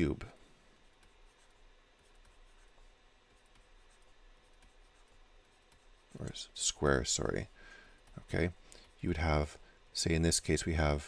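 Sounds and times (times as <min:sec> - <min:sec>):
stylus strokes on tablet screen: 0:00.0 - 0:11.0.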